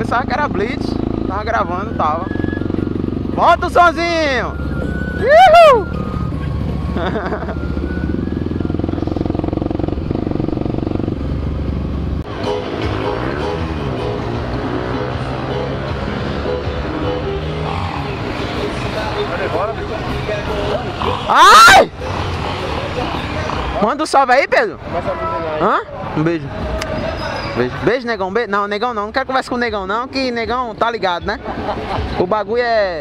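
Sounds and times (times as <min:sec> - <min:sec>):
motorcycle engine running: 0:00.0 - 0:23.9
several motorcycle engines: 0:00.0 - 0:33.0
person whooping: 0:05.1 - 0:06.0, 0:21.3 - 0:21.9.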